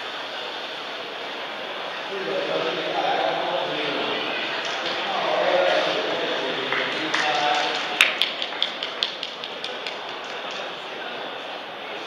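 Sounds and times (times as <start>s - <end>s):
crowded indoor hall noise: 0.0s - 12.0s.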